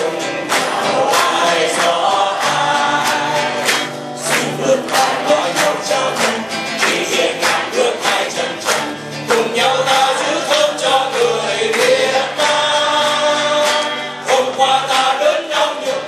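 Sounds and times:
men singing in harmony: 0:00.0 - 0:16.0
strummed guitar: 0:00.0 - 0:16.0.

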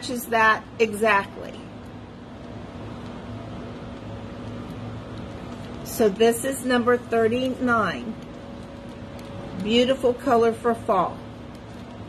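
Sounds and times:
steady background hum and hiss: 0:00.0 - 0:12.0.

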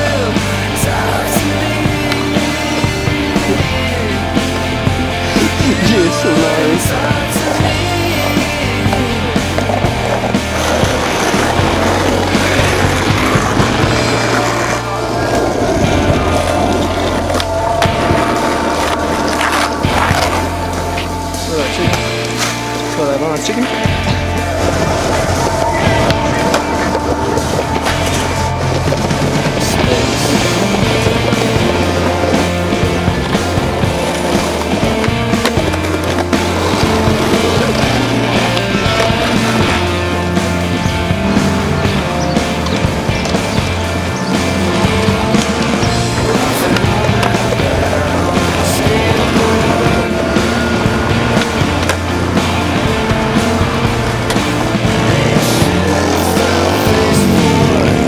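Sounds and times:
rock music: 0:00.0 - 0:58.0
skateboard wheels rolling on asphalt: 0:00.0 - 0:58.0.

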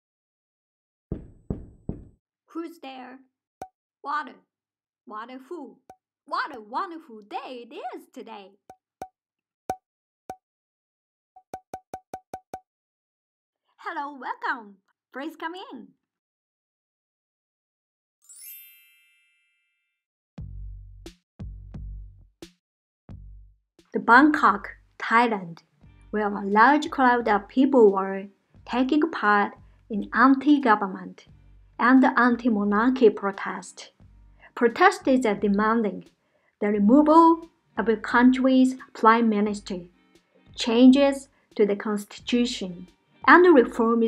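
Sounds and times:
knuckles knocking on door: 0:01.1 - 0:02.2
sparkly chime shimmer: 0:18.2 - 0:19.8
bell-like ding: 0:18.3 - 0:19.9.

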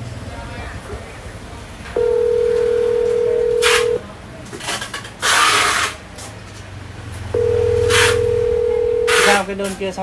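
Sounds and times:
electronic telephone tone: 0:02.0 - 0:04.0, 0:07.4 - 0:09.4.

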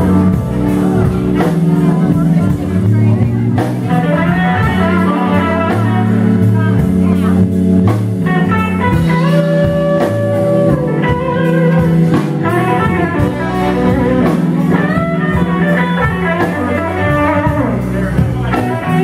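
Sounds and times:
blues band playing: 0:00.0 - 0:19.0
electric guitar lead with bent notes: 0:00.0 - 0:19.0.

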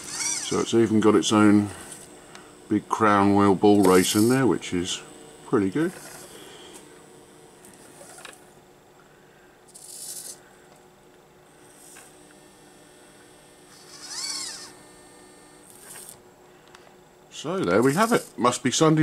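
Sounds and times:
servo whine rising and falling: 0:00.0 - 0:02.1, 0:13.7 - 0:16.2
servos whirring: 0:00.0 - 0:08.4, 0:09.7 - 0:10.4, 0:11.7 - 0:16.2, 0:17.6 - 0:18.4
low steady hum: 0:00.0 - 0:19.0.

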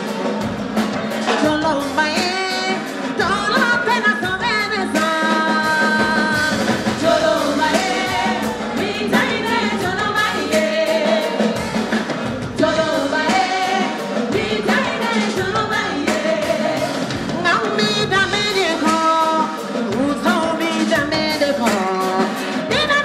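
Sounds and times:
bass guitar: 0:00.0 - 0:22.0
steady drum beat: 0:00.0 - 0:23.0
women singing lead vocals: 0:01.2 - 0:23.0.

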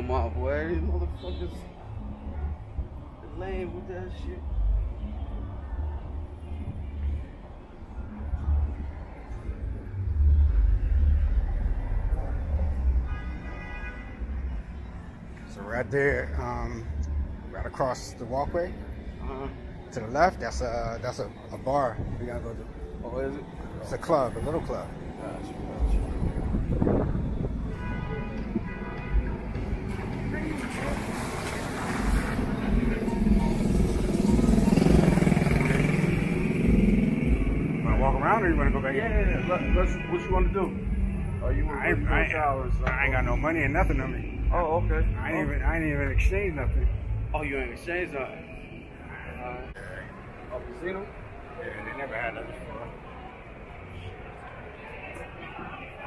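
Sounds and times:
street ambience rumble: 0:00.0 - 0:56.0
small motorcycle engine passing: 0:31.7 - 0:37.8.

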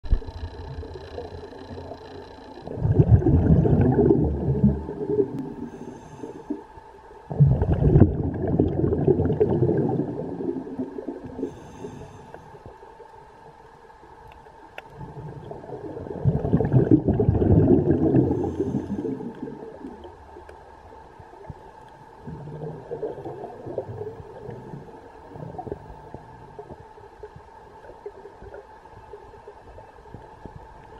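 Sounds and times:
underwater bubbles gurgling: 0:00.0 - 0:12.8, 0:14.4 - 0:30.9.

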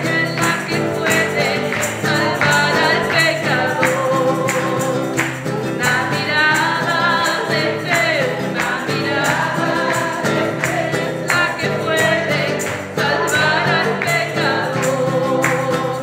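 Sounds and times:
classical guitar strumming: 0:00.0 - 0:16.0
woman singing into a microphone: 0:00.0 - 0:16.0.

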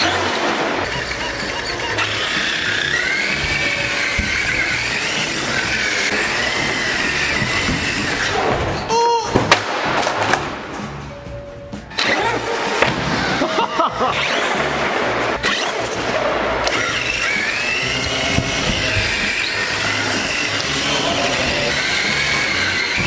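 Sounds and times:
electric motor whining: 0:00.0 - 0:08.5, 0:11.9 - 0:23.0
background music with bass line: 0:10.2 - 0:23.0.

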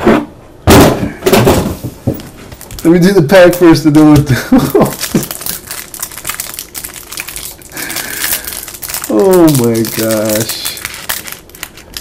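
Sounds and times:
card pack wrapper crinkling: 0:02.5 - 0:12.0.

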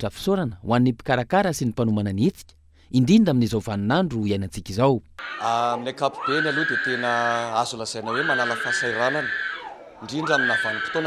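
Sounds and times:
man speaking: 0:00.0 - 0:09.3, 0:10.0 - 0:11.0.

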